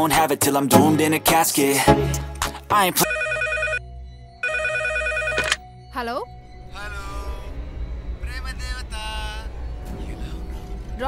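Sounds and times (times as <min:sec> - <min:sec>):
telephone ringing electronically: 0:03.0 - 0:05.6.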